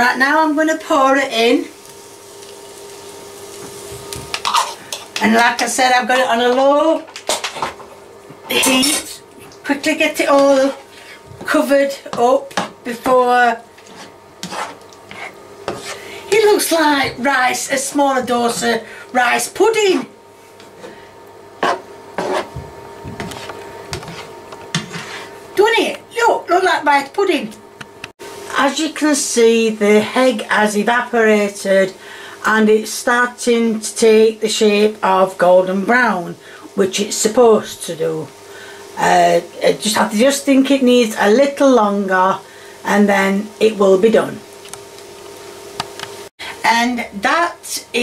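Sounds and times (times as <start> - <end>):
faint steady hum: 0.0 - 48.0
spatula scraping frying pan: 3.5 - 5.4, 13.7 - 17.3, 21.6 - 22.6, 23.3 - 25.4.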